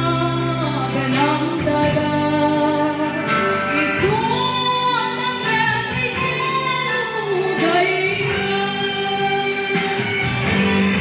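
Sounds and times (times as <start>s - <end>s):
woman singing into microphone: 0.0s - 11.0s.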